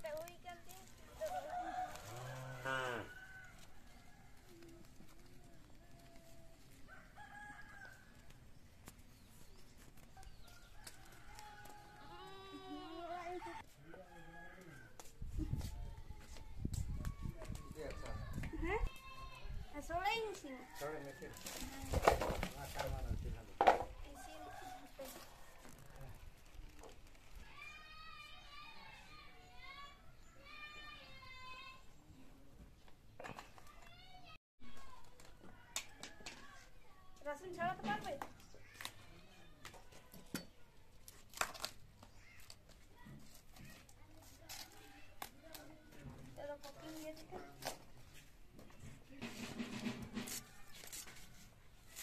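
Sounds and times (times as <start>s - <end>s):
chicken and rooster calls: 1.1s - 5.0s, 6.6s - 8.4s, 10.2s - 12.8s, 13.6s - 15.1s, 20.4s - 21.8s, 24.1s - 26.1s.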